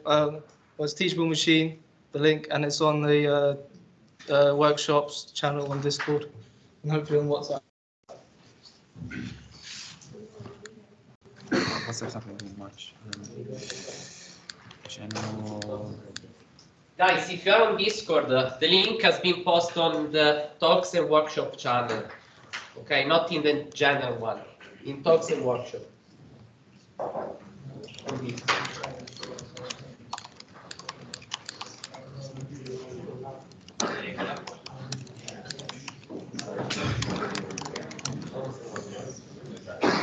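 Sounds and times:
computer keyboard typing: 27.8s - 39.7s.

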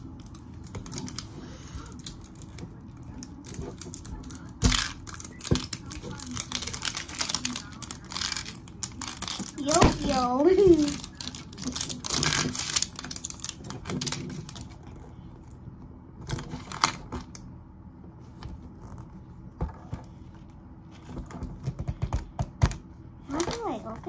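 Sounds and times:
plastic wrapper crinkling: 1.9s - 15.0s.

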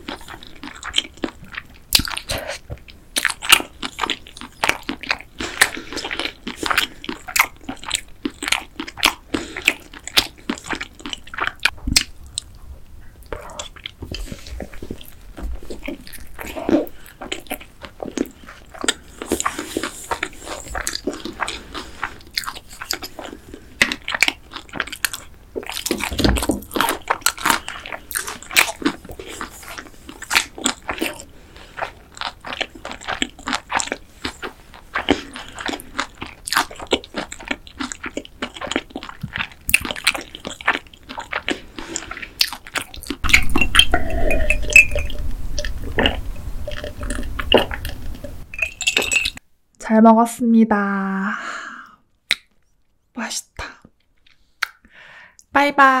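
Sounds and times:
chewing with wet mouth clicks: 0.0s - 49.4s, 52.3s - 52.8s, 54.0s - 55.5s
gulping a drink: 35.0s - 49.4s.

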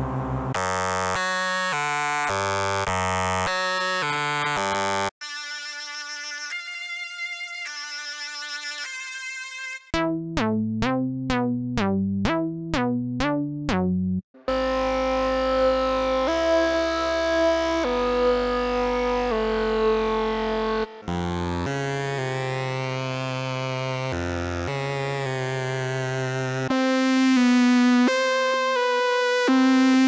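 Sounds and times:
bright buzzy synth notes: 0.5s - 30.0s
pulsing wobbling synth: 14.5s - 24.4s.

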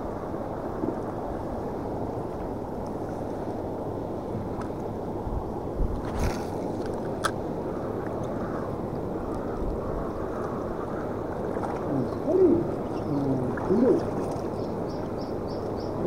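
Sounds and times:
rippling water: 0.0s - 16.0s
breeze: 6.1s - 16.0s
wavering low-pitched calls: 11.8s - 16.0s.

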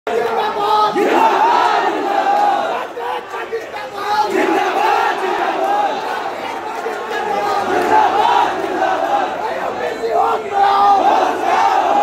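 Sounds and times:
crowd shouting in protest: 0.1s - 12.0s.

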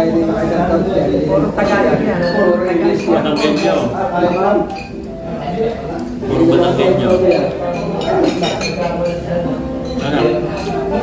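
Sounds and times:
people talking: 0.0s - 11.0s
cutlery clinking on plates: 1.6s - 6.2s, 6.9s - 11.0s.

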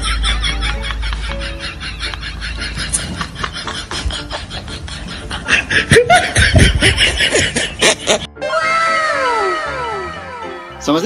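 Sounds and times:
people laughing: 0.0s - 8.3s.

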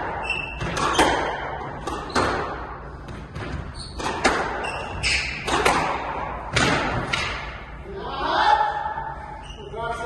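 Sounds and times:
squash ball knocks: 5.4s - 7.6s.

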